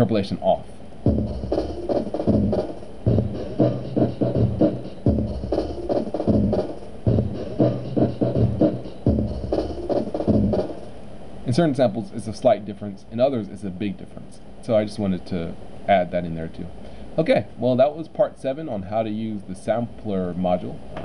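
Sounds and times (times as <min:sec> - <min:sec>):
drum loop: 0:01.0 - 0:11.0.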